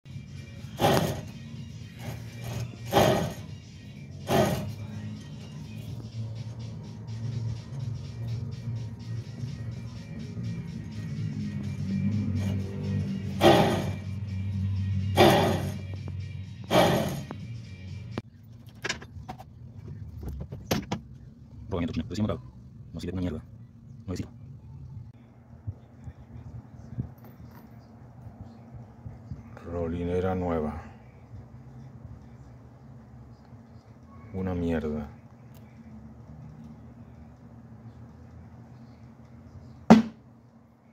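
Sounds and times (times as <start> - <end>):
wheel bearing grinding: 0.7 - 3.5, 4.2 - 4.9, 13.2 - 14.2, 15.2 - 15.9, 16.7 - 17.3.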